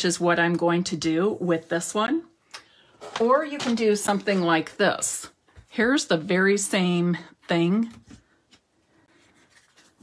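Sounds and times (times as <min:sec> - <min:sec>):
cardstock rustling: 0:09.3 - 0:10.0.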